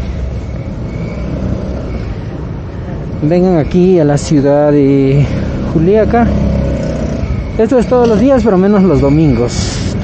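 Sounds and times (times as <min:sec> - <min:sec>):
traffic engines rumbling: 0:00.0 - 0:10.0.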